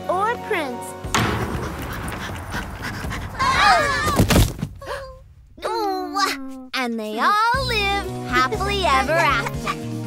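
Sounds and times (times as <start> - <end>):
heavy thud: 1.1 - 6.0.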